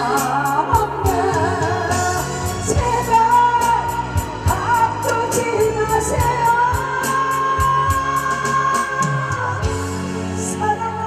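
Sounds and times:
backing track with steady beat: 0:00.0 - 0:11.0
person singing into a microphone: 0:00.0 - 0:11.0.

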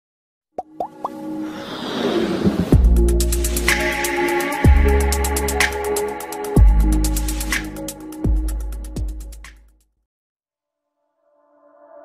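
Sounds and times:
synthesized whoosh: 0:01.4 - 0:03.7.

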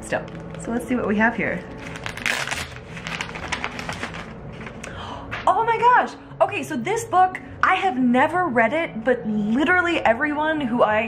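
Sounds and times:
wrapping paper ripping and crackling: 0:00.2 - 0:04.9.

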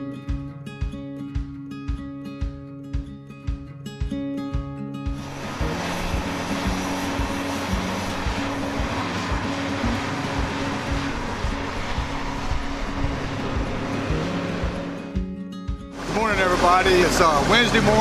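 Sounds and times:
background music with steady beat: 0:00.0 - 0:18.0.

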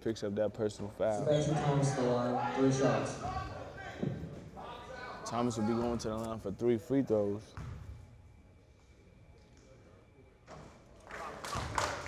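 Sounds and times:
basketball bouncing on hardwood: 0:07.6 - 0:07.9.

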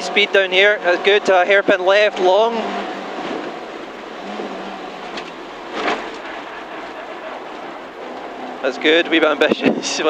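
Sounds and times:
car engine running hard: 0:00.0 - 0:10.0
road and wind noise: 0:00.0 - 0:10.0.

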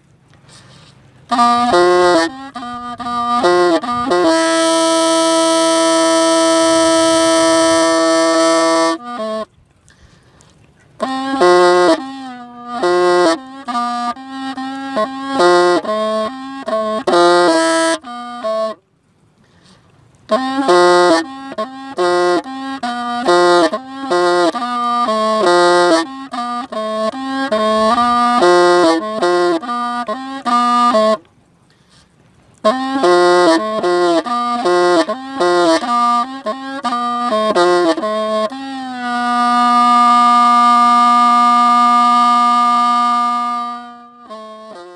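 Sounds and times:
bamboo pipe playing slow tune: 0:00.0 - 0:44.9.

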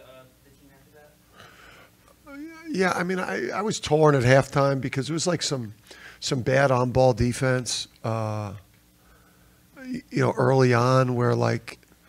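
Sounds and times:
man's sharp intake of breath: 0:01.3 - 0:02.0, 0:05.8 - 0:06.2.

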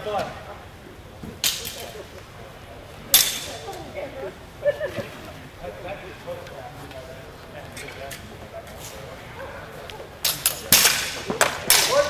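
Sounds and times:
swords clashing: 0:03.1 - 0:03.6, 0:10.2 - 0:12.0.

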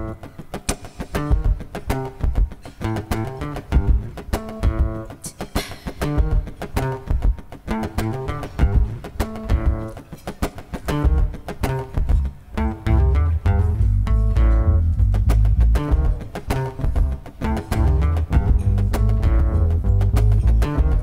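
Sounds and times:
acoustic guitar picked notes: 0:00.0 - 0:21.0
deep bass line: 0:12.1 - 0:16.2, 0:16.8 - 0:21.0.

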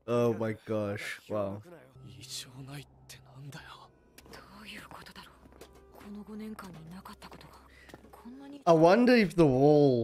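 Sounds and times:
quiet dialogue: 0:00.0 - 0:10.0
soft music: 0:00.0 - 0:10.0.

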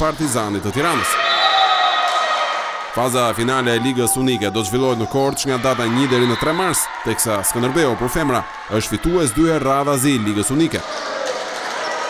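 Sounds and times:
echoing sports hall noise: 0:00.0 - 0:12.0.

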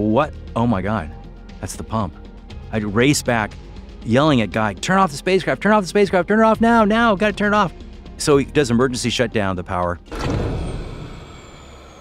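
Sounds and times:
power-down rush of noise: 0:10.1 - 0:12.0.

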